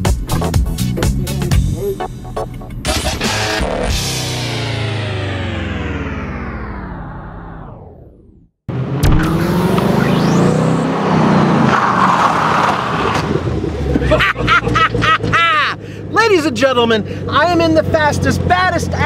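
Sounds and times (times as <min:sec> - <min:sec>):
rock music slowing to a stop: 0:00.0 - 0:07.6
car engine driving by: 0:02.6 - 0:16.1
man's excited voice: 0:15.4 - 0:19.0.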